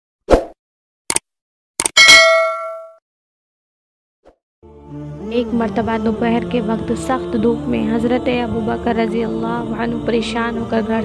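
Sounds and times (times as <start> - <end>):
bright metallic ding: 2.0 - 3.0.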